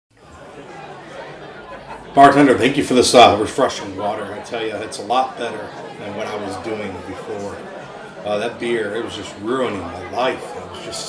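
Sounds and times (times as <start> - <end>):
murmur of voices: 0.1 - 11.0.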